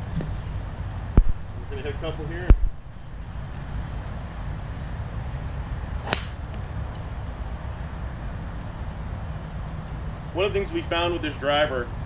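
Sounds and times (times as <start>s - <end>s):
low background rumble: 0.0s - 12.0s
golf club striking ball: 5.3s - 6.7s.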